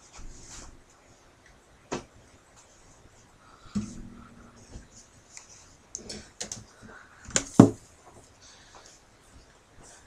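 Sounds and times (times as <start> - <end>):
sharp heavy thumps: 3.7 - 5.0.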